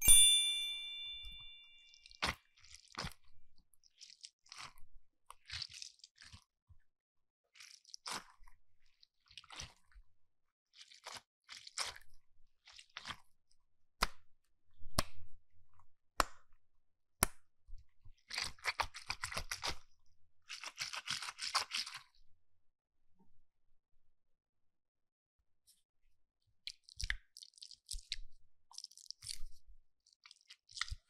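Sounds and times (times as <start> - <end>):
bright chime: 0.0 - 2.0
squishy toy crackles and squishes: 2.0 - 6.6, 7.5 - 10.0, 10.7 - 13.4, 18.1 - 22.1, 26.7 - 31.0.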